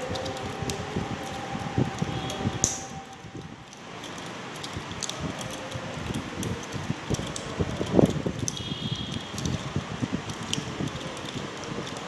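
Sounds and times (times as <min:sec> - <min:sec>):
wire rustling and tapping: 0:00.0 - 0:12.0.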